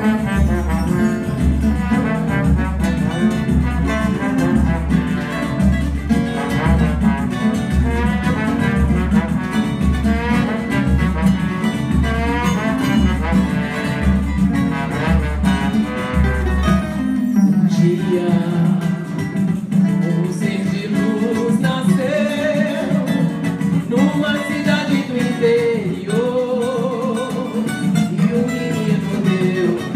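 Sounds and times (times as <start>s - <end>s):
bass pulse: 0.0s - 17.0s
brass melody: 0.0s - 18.4s
guitar: 0.0s - 29.9s
hand drums: 0.0s - 29.9s.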